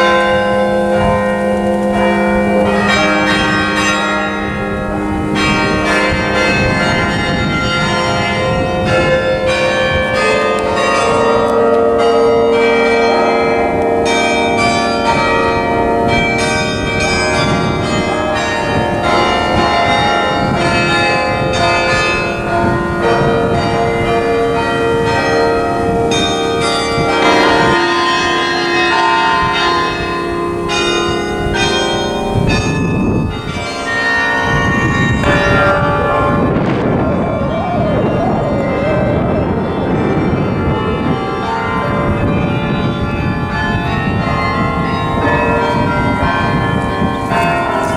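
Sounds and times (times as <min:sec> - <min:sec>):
carillon bells playing a tune: 0:00.0 - 0:47.9.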